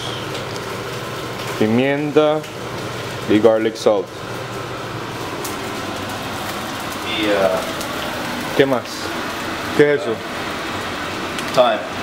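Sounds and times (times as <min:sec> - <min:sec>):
sausages sizzling in a pan: 0:00.0 - 0:12.0.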